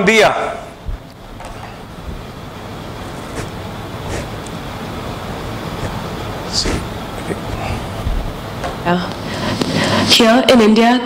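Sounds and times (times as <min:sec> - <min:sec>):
low rumbling noise with hiss: 0:00.0 - 0:11.0.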